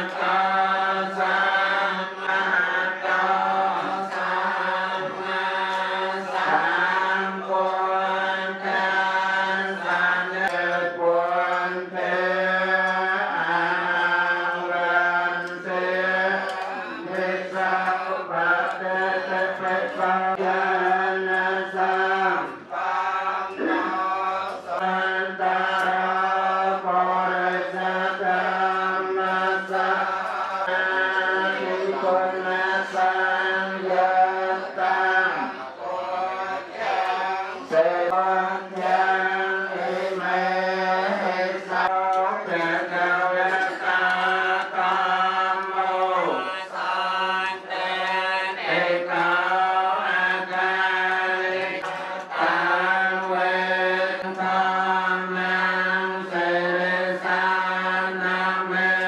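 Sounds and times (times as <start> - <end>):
group of voices chanting: 0.0 - 59.0.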